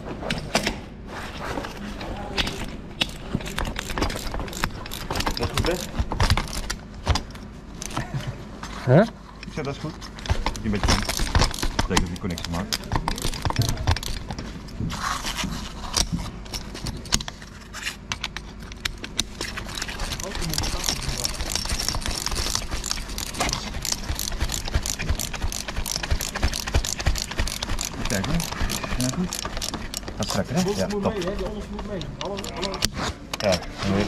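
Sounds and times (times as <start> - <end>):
small metallic clicks and scrapes: 2.4 - 8.0, 9.4 - 33.7.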